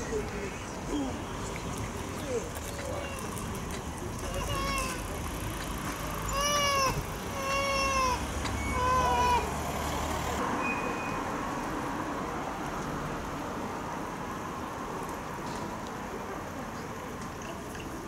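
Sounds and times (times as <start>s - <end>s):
vehicle engine rumble: 0.0s - 10.6s.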